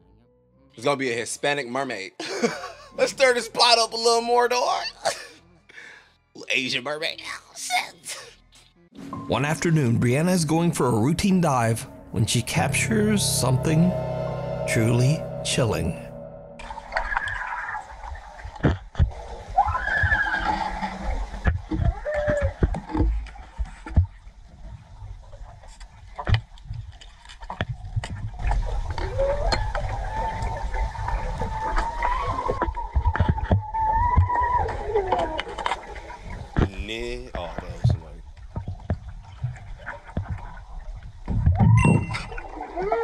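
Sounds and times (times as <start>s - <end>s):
low water rumble: 9.1s - 43.0s
muffled underwater screams: 19.5s - 21.1s, 29.0s - 35.9s, 42.5s - 43.0s.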